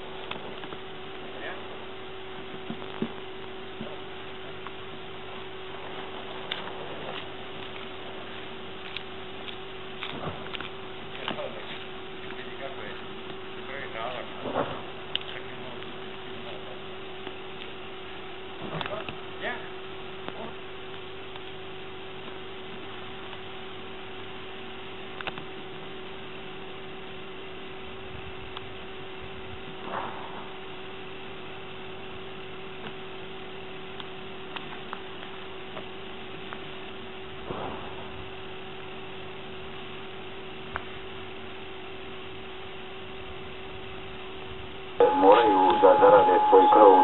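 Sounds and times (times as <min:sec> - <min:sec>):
steady electrical hum: 0:00.0 - 0:47.0
high whistle tone: 0:45.0 - 0:47.0
loud voices: 0:45.0 - 0:47.0.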